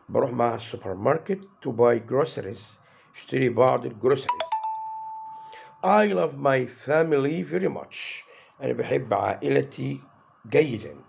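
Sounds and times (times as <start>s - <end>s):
man speaking: 0.0s - 4.3s, 5.8s - 11.0s
electronic ding-dong chime: 4.3s - 5.8s.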